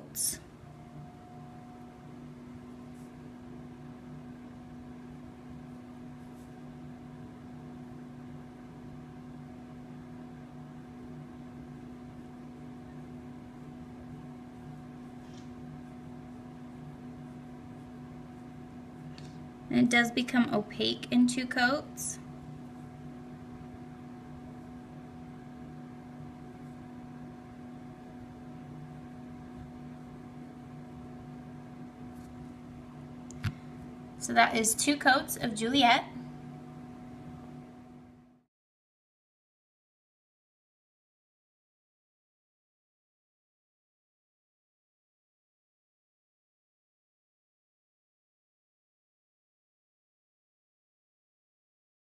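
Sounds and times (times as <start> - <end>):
steady low hum: 0.0 - 38.5.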